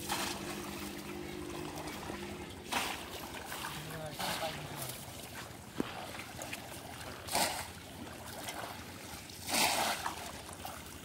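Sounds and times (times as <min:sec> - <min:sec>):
water sloshing and splashing: 0:00.0 - 0:11.0.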